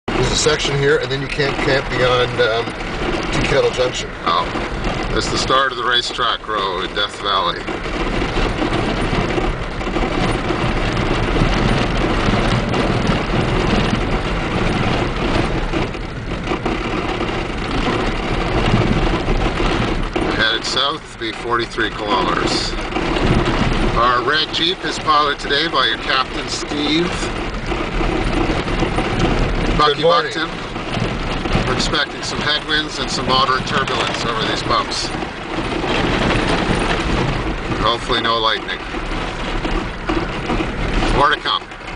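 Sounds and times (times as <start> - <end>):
car engine running: 0.0 - 41.9
tyres on gravel road: 0.0 - 41.9
man's voice: 0.2 - 2.7, 3.4 - 7.7, 20.3 - 22.8, 24.0 - 27.4, 29.8 - 30.6, 31.6 - 35.2, 37.8 - 38.9, 41.1 - 41.7.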